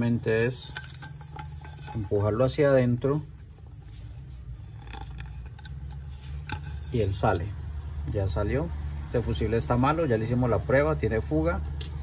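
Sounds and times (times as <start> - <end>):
small clicks and rubbing: 3.6 - 7.1.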